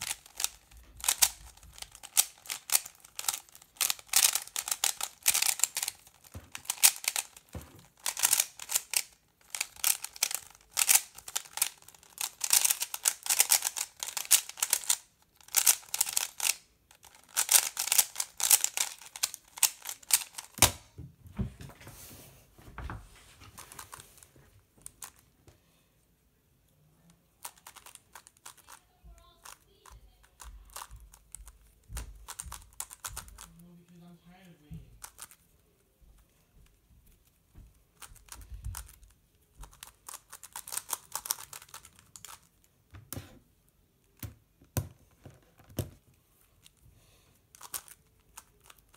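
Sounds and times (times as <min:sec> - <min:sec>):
plastic puzzle cube clicking: 0:00.0 - 0:20.9, 0:27.4 - 0:28.8, 0:29.4 - 0:33.6, 0:35.0 - 0:35.4, 0:38.0 - 0:39.0, 0:39.7 - 0:42.6, 0:47.5 - 0:48.9.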